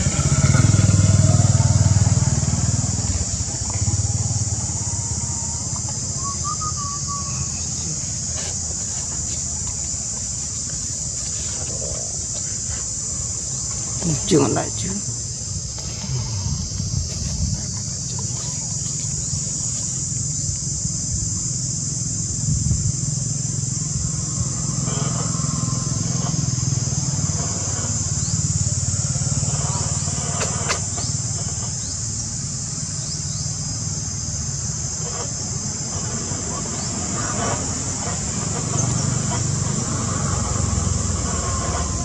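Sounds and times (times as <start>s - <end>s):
high-pitched insect chorus: 0.0s - 42.0s
low motor-like hum: 0.0s - 42.0s.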